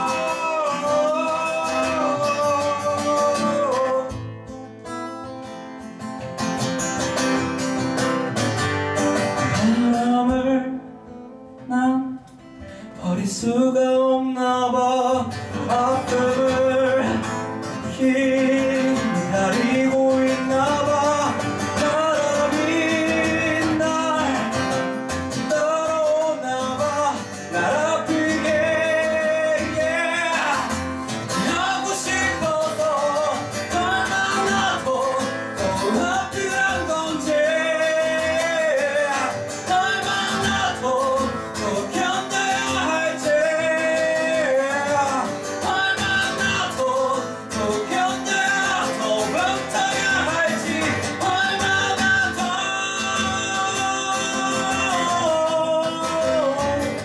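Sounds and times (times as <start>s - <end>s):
man singing into a microphone: 0.0s - 4.4s, 9.4s - 10.9s, 11.6s - 57.0s
acoustic guitar: 0.0s - 57.0s.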